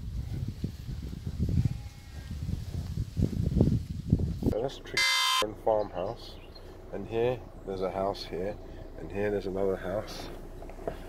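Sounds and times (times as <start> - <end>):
cows breathing and moving: 0.0 - 4.6, 8.0 - 11.0.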